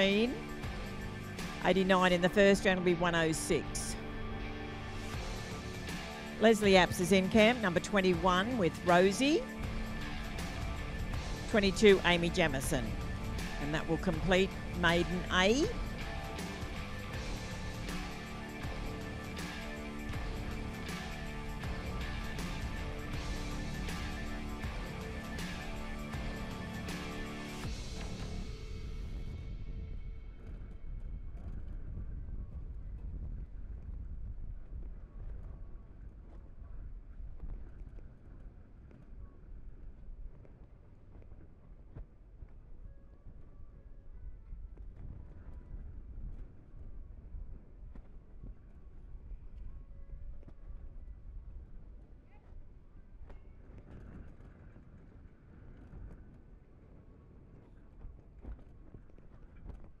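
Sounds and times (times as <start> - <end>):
steady low rumble: 0.0 - 56.7.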